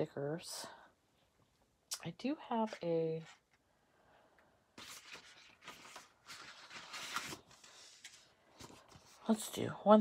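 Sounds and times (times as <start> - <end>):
paper sticker sheets rustling: 4.8 - 9.6.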